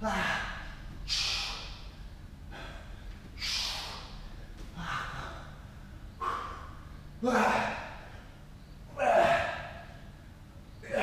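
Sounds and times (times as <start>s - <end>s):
man breathing hard: 0.0s - 8.4s
sharp hissing breaths: 1.0s - 4.4s.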